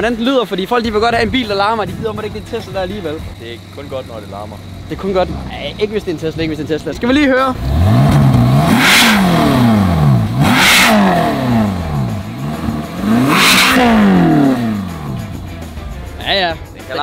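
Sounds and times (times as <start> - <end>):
car engine revving: 0.0 - 17.0.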